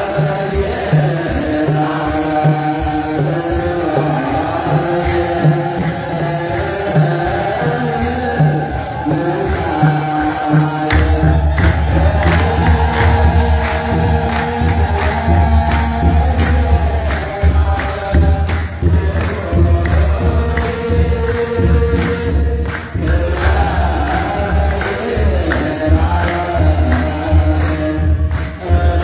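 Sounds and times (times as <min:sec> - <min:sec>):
deep drum beat: 0:00.0 - 0:29.0
group chanting in unison: 0:00.0 - 0:29.0
jingling percussion: 0:00.0 - 0:29.0.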